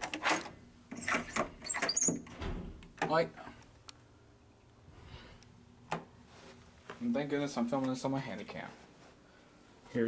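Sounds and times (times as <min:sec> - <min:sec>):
door lock clicking and rattling: 0:00.0 - 0:03.2.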